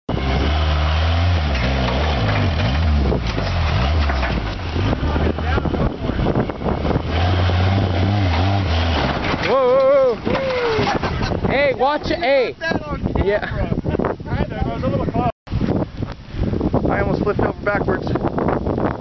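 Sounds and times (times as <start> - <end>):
engine running under load: 0.1 - 11.3
person shouting: 9.5 - 10.9.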